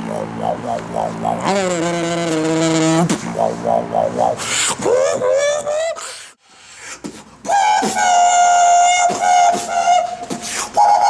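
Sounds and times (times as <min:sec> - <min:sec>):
beatboxing buzzy vocal note: 0:00.0 - 0:05.2.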